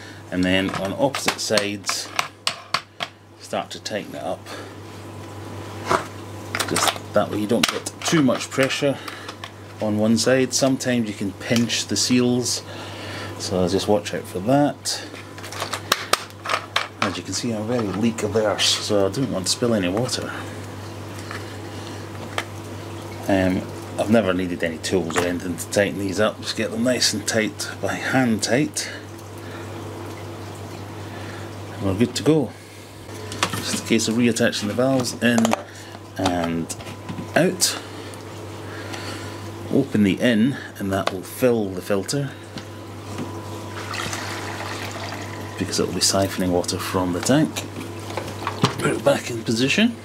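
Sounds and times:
steady low hum: 0.0 - 50.0
water trickling into filter: 43.4 - 46.1.

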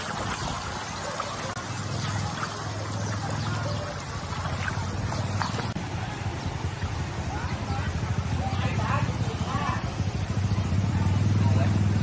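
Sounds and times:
floodwater sloshing and trickling: 0.0 - 12.0.

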